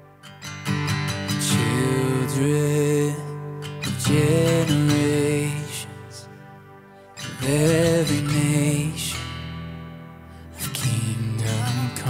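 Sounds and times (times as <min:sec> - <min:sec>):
strummed acoustic guitar chords: 0:00.0 - 0:12.0
person singing: 0:01.3 - 0:09.5, 0:10.6 - 0:12.0.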